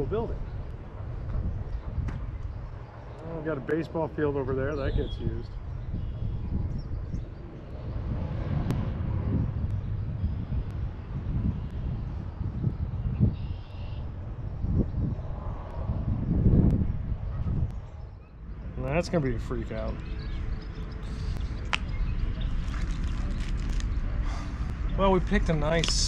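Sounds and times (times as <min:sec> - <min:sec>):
low uneven rumble: 0:00.0 - 0:13.4, 0:14.0 - 0:26.0.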